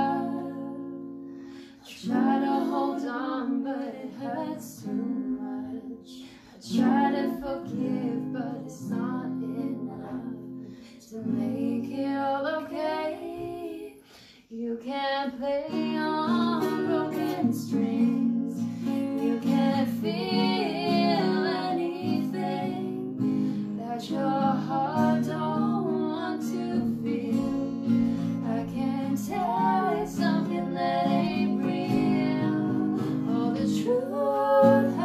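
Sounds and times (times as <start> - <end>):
acoustic guitar: 0.0 - 35.0
women singing: 0.0 - 35.0.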